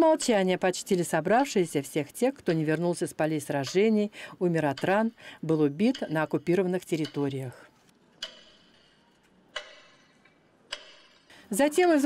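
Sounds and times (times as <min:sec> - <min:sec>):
metronome ticking: 0:04.6 - 0:07.5, 0:08.2 - 0:08.8, 0:09.5 - 0:12.0.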